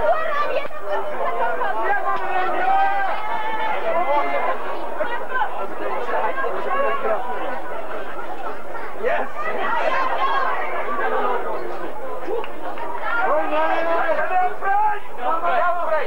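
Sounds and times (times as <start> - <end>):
overlapping chatter of voices: 0.0 - 16.0
people calling out: 0.0 - 16.0.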